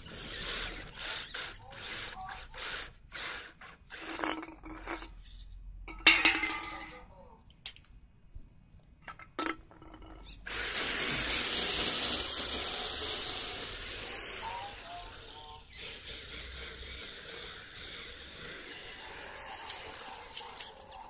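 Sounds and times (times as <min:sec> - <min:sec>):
rc car tyres sliding hiss: 0:00.0 - 0:05.4, 0:10.4 - 0:21.0.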